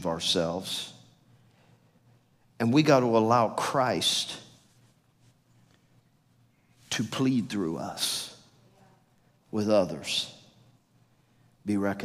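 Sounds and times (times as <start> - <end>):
man speaking: 2.6 - 4.6, 6.9 - 8.5, 9.5 - 10.5, 11.6 - 12.0.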